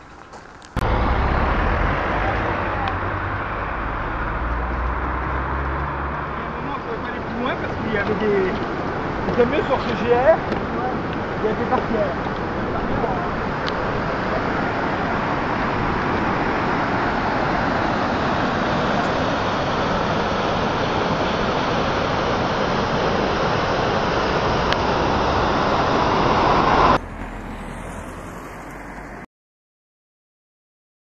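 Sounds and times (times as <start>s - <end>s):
river water pouring over a weir: 2.2s - 27.0s
hiss with rising tone: 13.0s - 29.3s.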